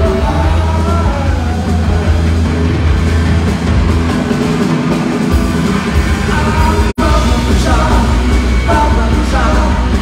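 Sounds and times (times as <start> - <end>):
punk rock band playing live: 0.0 - 10.0.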